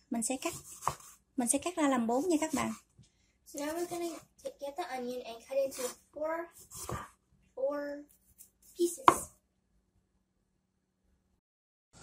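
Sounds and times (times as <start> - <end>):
knife chopping onto wooden board: 0.5 - 1.1, 6.7 - 7.1, 9.0 - 9.3.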